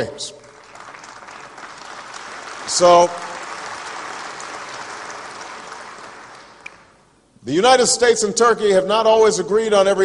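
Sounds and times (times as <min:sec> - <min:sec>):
audience applauding: 0:00.4 - 0:07.0.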